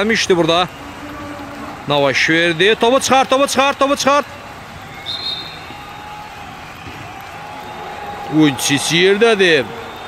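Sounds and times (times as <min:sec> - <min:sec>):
background hum of pitch: 0:00.0 - 0:03.5
referee's whistle blast: 0:05.0 - 0:05.8.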